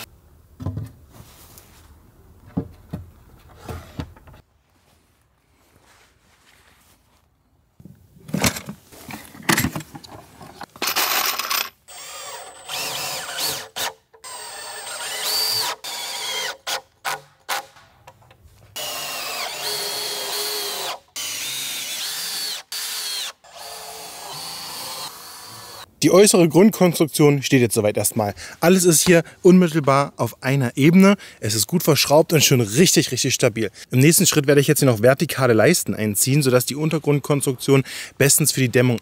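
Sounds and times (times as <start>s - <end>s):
cordless drill driving screws: 10.9s - 17.6s, 18.8s - 25.9s.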